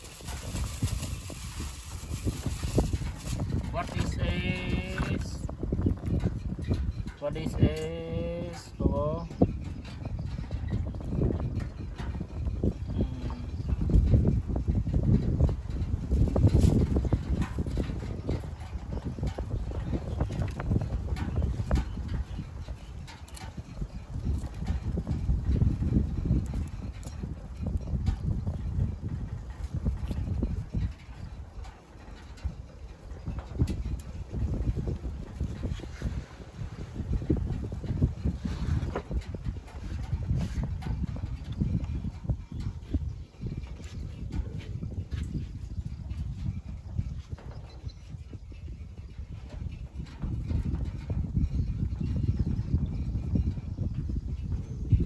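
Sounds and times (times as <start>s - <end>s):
wind rumble on microphone: 0.0s - 55.0s.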